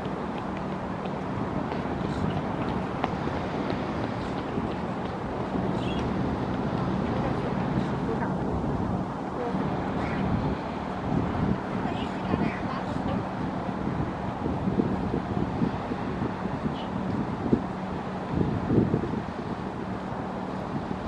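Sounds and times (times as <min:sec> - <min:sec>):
low engine hum: 0:00.0 - 0:21.0
wind buffeting microphone: 0:00.0 - 0:21.0.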